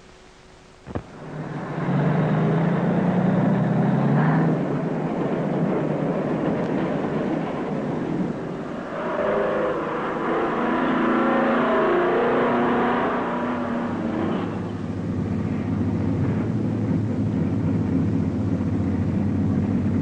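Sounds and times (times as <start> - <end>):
truck diesel engine running: 0.9 - 10.7, 13.6 - 20.0.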